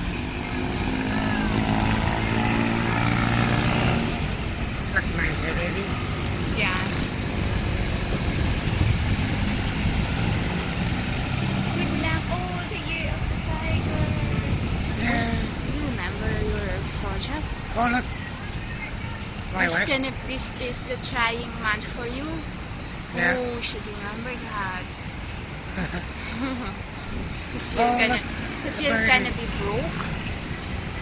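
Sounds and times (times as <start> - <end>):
vehicle engines passing: 0.0 - 31.0
faint voices talking: 11.7 - 25.0, 26.5 - 30.2.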